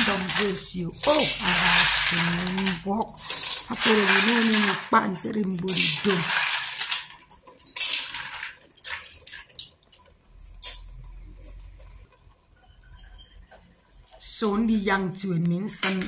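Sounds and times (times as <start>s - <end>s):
shells clicking and rattling in pot: 0.0s - 16.0s.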